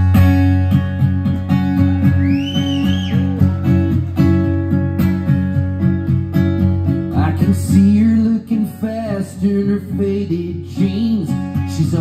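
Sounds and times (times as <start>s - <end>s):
acoustic guitar playing: 0.0s - 12.0s.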